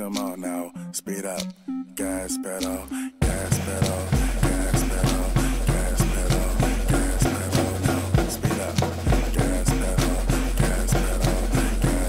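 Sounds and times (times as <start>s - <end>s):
hip-hop backing track: 0.0s - 12.0s
deep bass: 3.2s - 7.5s
drum kit playing: 3.2s - 12.0s.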